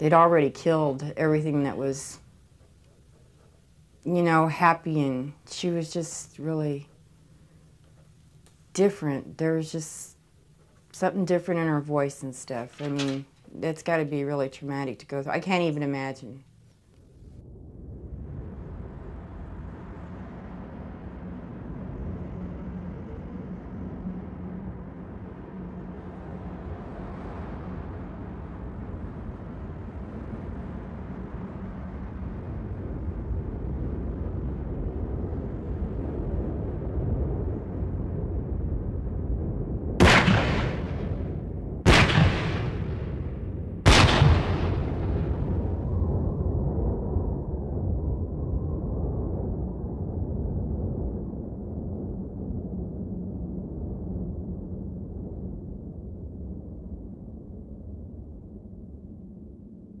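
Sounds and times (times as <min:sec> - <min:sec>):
low rumble: 0:15.6 - 1:00.0
gunshots: 0:40.0 - 0:41.3, 0:41.9 - 0:43.2, 0:43.8 - 0:45.0.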